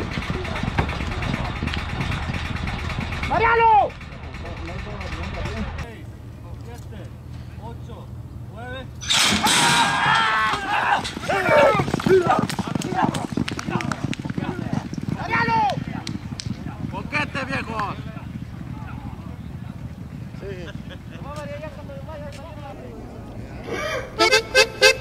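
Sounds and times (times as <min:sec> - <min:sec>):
starting gates clattering open: 0:00.0 - 0:05.9, 0:09.0 - 0:11.6
people yelling and shouting: 0:09.3 - 0:13.1.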